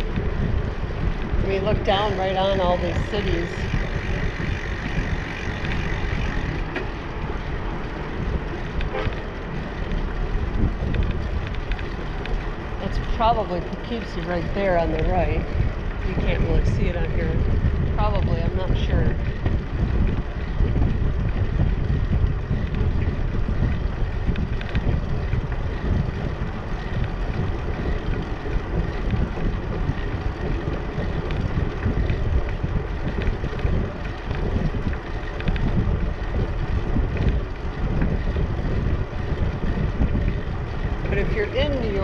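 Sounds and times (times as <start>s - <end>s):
bicycle tyres rolling on concrete: 0.0s - 42.0s
wind buffeting microphone: 0.0s - 42.0s.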